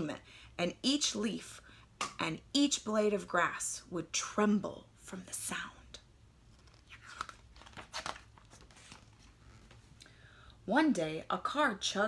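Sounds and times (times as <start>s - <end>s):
paper page turning: 6.5s - 9.9s.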